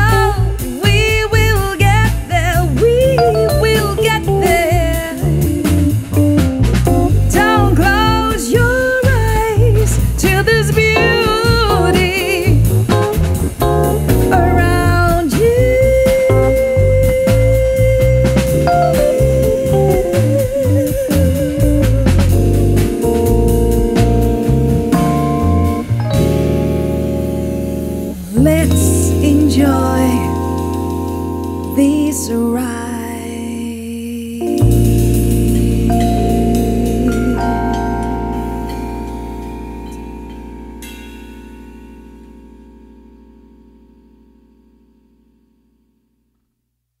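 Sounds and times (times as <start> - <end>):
woman singing: 0.0 - 6.0, 7.2 - 12.7, 14.3 - 22.5, 28.3 - 30.7, 31.7 - 38.7
electric piano chords: 0.0 - 46.0
upright bass notes: 0.0 - 46.0.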